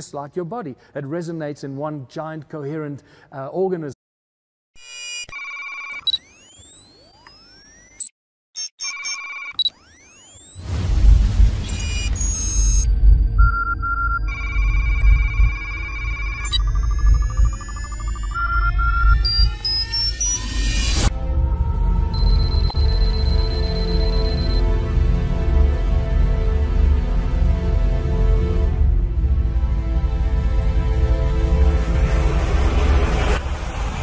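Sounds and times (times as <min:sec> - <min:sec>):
beeps: 0:04.8 - 0:10.8, 0:11.6 - 0:21.1, 0:22.1 - 0:24.6
electronic music: 0:05.9 - 0:13.4, 0:14.2 - 0:25.4
deep bass rumble: 0:10.7 - 0:19.7, 0:21.1 - 0:34.0.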